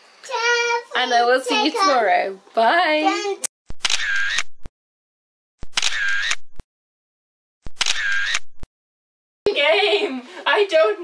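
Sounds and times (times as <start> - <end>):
camera shutter sound effect: 3.7 - 4.7, 5.6 - 6.6, 7.6 - 8.7.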